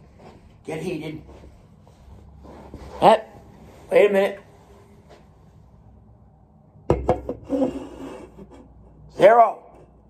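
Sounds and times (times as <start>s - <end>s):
can knocking against microphone: 6.9s - 7.4s.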